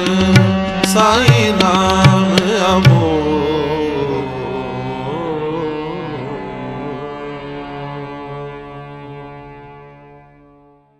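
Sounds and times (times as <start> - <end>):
harmonium sustained chord: 0.0 - 10.9.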